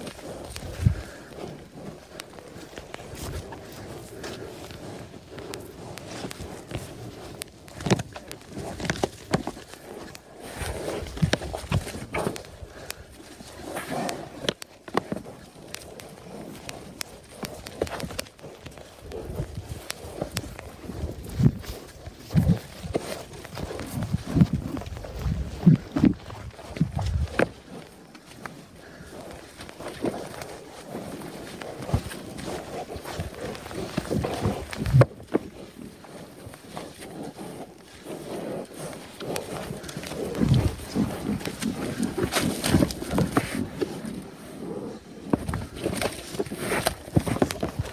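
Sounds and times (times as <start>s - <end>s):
hooves scuffling on turf: 0.0s - 47.9s.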